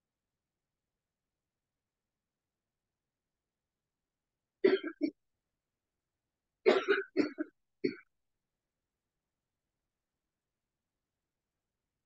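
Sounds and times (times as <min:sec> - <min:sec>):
person clearing throat: 0:04.6 - 0:05.2, 0:06.7 - 0:08.1
person coughing: 0:04.6 - 0:05.2, 0:06.7 - 0:08.1.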